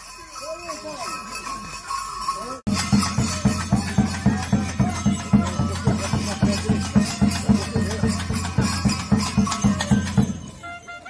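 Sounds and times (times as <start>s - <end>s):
bells clanking and jingling: 0.0s - 11.0s
drum beating steady rhythm: 0.0s - 11.0s.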